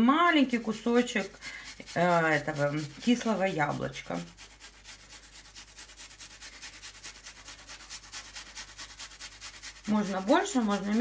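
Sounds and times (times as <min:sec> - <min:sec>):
apple rasping on metal grater: 0:00.1 - 0:11.0.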